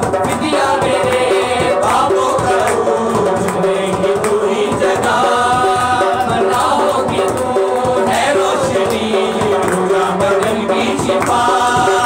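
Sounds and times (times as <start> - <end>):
hand drum beat: 0.0 - 12.0
men singing together: 0.0 - 12.0.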